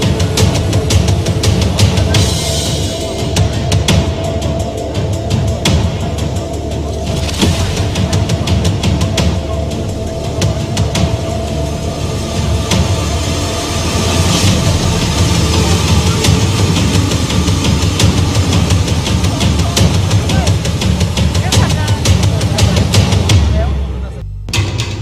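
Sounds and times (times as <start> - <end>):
background music with heavy bass: 0.0 - 25.0.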